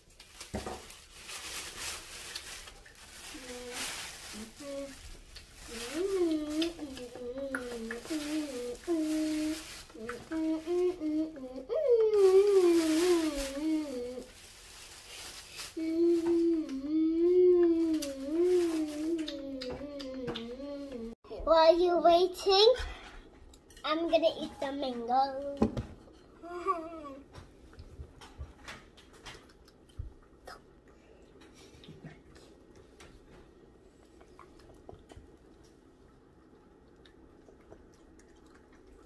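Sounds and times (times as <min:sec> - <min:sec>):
corn husks rustling: 0:00.0 - 0:11.1, 0:12.1 - 0:16.7, 0:17.8 - 0:19.3
plastic bag rustling: 0:00.0 - 0:19.6
child humming: 0:03.3 - 0:05.0, 0:05.7 - 0:14.3, 0:15.8 - 0:21.2, 0:26.4 - 0:27.3.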